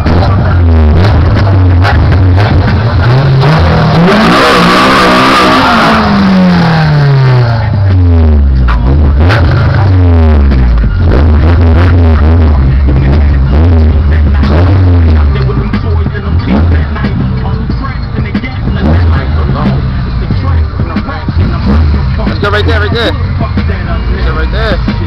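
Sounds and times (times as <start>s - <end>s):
car engine revving: 0.0s - 25.0s
music with steady beat: 0.0s - 25.0s.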